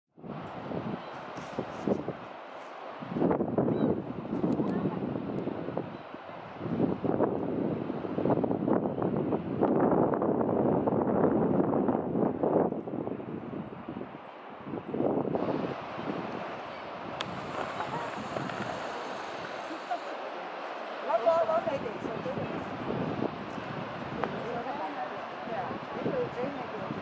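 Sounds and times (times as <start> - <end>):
wind buffeting microphone: 0.2 - 27.0
people's voices: 4.3 - 5.1, 17.2 - 23.0, 24.0 - 27.0.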